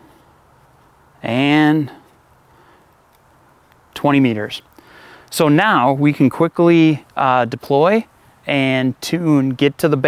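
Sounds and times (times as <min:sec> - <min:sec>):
quiet steady hiss: 0:00.0 - 0:10.0.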